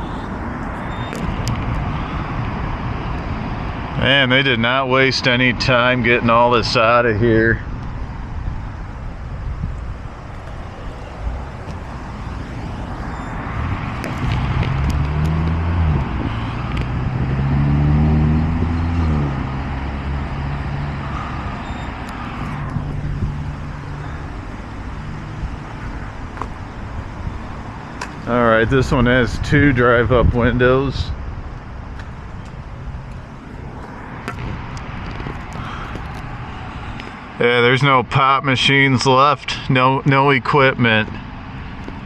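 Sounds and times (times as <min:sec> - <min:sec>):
vehicle passing: 0:00.0 - 0:37.6
low traffic rumble: 0:00.0 - 0:42.0.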